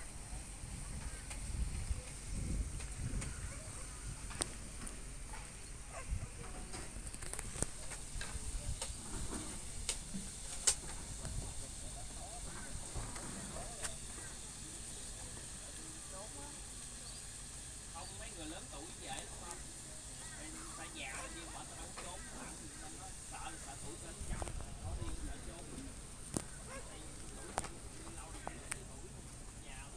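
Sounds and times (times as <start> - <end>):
faint voices: 0.0 - 29.9
meat sizzling on a grill: 6.7 - 29.9.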